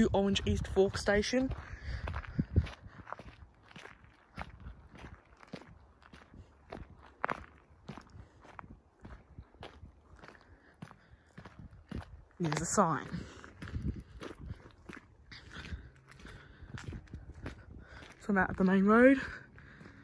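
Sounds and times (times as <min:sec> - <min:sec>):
footsteps on wet gravel: 0:00.0 - 0:20.0.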